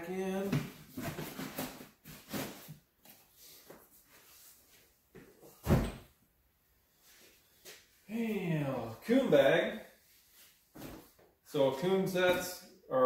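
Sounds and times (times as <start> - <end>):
loud thump: 5.6 - 6.0.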